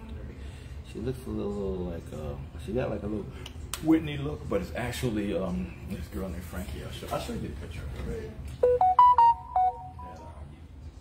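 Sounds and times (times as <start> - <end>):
electronic chime melody: 8.6 - 10.2.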